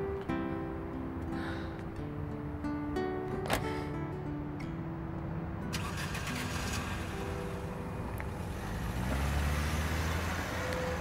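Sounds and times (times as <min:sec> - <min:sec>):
soft background music: 0:00.0 - 0:11.0
car engine rumbling: 0:05.0 - 0:11.0.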